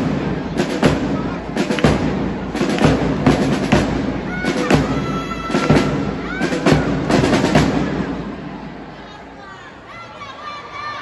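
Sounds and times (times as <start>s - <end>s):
marching drums beating: 0.0s - 8.6s.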